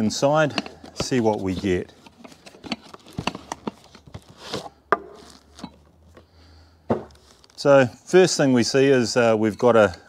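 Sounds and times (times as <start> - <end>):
cardboard rustling and scraping: 0.7 - 5.7, 7.0 - 7.7.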